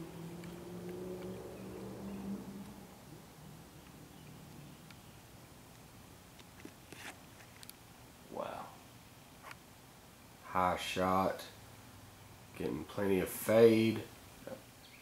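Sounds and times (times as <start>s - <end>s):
faint low hum: 0.0s - 15.0s.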